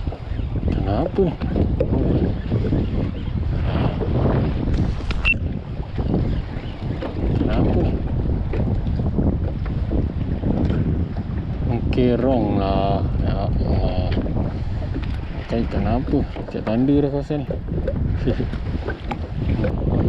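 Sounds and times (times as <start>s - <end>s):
water moving around kayak hull: 0.0s - 20.0s
wind buffeting microphone: 0.0s - 20.0s.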